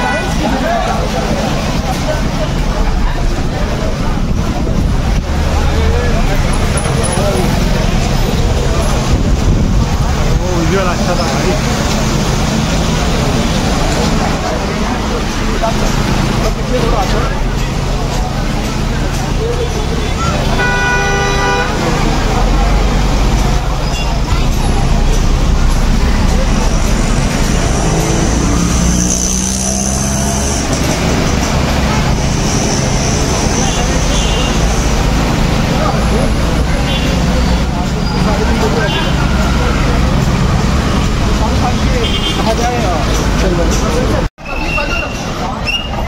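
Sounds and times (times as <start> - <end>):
busy street traffic: 0.0 - 46.0
crowd voices: 0.0 - 46.0
vehicle horn honking: 20.3 - 21.9, 42.0 - 42.5.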